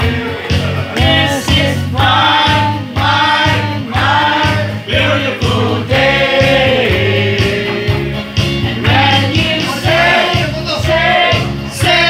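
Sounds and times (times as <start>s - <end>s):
electronic keyboard accompaniment: 0.0s - 12.0s
group singing through microphones: 0.0s - 12.0s.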